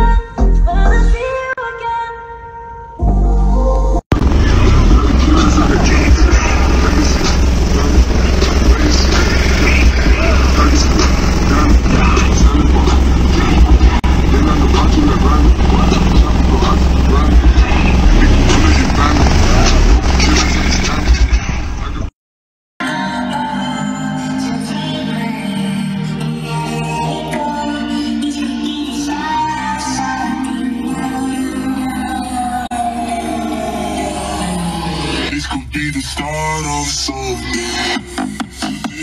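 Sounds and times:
loud distorted car audio bass: 0:04.1 - 0:22.1, 0:27.9 - 0:39.0
voices: 0:04.2 - 0:22.1.

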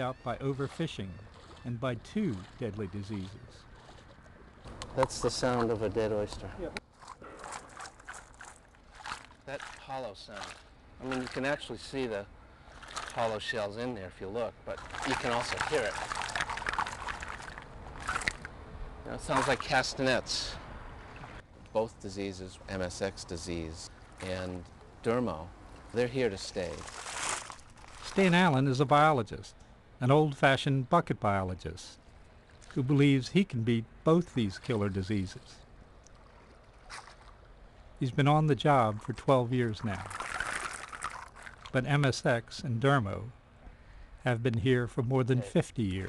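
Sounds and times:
water sloshing and dripping: 0:00.0 - 0:13.8, 0:14.4 - 0:20.0, 0:21.0 - 0:21.5, 0:22.5 - 0:28.4, 0:32.0 - 0:33.2, 0:34.4 - 0:38.0, 0:38.8 - 0:41.8
oyster shells rattling in cage: 0:40.1 - 0:41.7.

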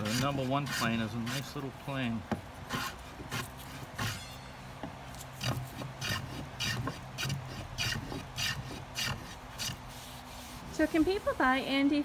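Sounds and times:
hand plane shaving wood: 0:00.0 - 0:01.6, 0:02.7 - 0:04.2, 0:05.4 - 0:11.1.

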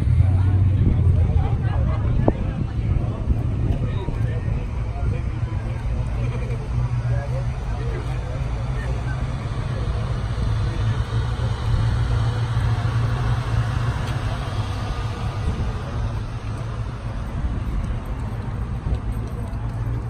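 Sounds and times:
people talking: 0:00.0 - 0:20.0
vehicle engine idling: 0:00.0 - 0:20.0.

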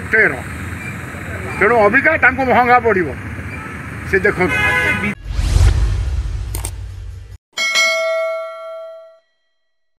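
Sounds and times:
notification bell ding: 0:07.6 - 0:09.4.

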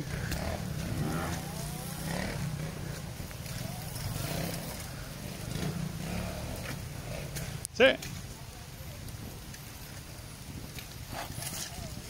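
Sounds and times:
dirt bike engine: 0:00.0 - 0:08.5.

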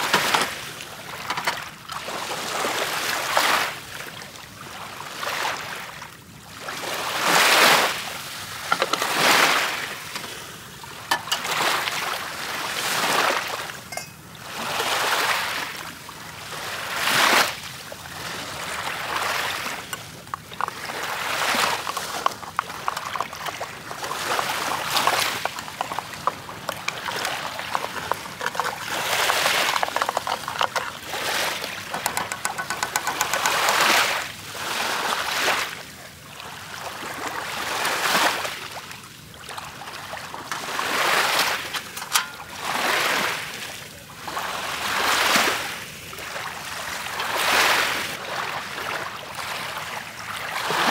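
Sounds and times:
waves washing up pebble shore: 0:00.0 - 0:04.0, 0:04.7 - 0:38.9, 0:39.6 - 0:50.9
stones crackling: 0:19.9 - 0:34.0.

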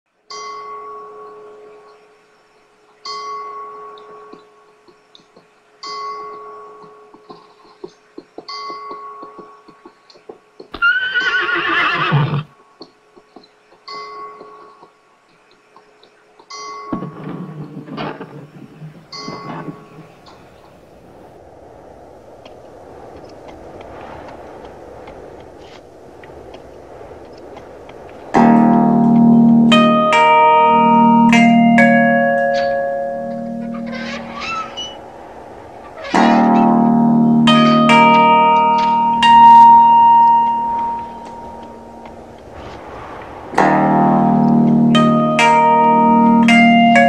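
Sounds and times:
faint steady hiss: 0:00.1 - 0:47.0
guitar chords ringing: 0:16.6 - 0:20.1, 0:28.4 - 0:35.0, 0:36.1 - 0:42.3, 0:43.6 - 0:47.0
picked guitar notes: 0:28.4 - 0:35.0, 0:36.1 - 0:42.2, 0:43.6 - 0:47.0.

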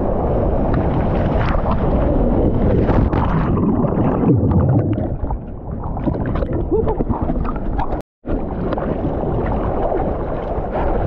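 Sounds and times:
water buffeting microphone: 0:00.0 - 0:11.0.

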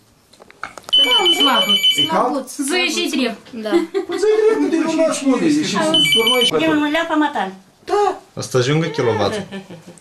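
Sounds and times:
telephone ringing: 0:00.9 - 0:02.2, 0:05.8 - 0:06.6
people talking: 0:01.0 - 0:08.2.

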